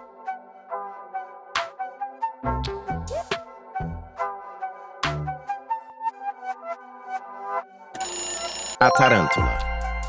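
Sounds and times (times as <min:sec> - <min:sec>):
light electronic background music: 0:00.0 - 0:10.0
bright electronic ringing: 0:08.0 - 0:10.0
reveal sound effect falling pitches: 0:08.8 - 0:10.0.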